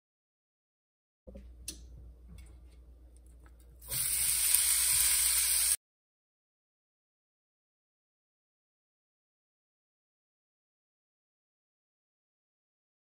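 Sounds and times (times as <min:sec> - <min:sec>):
bacon sizzling in a pan: 0:03.8 - 0:05.8.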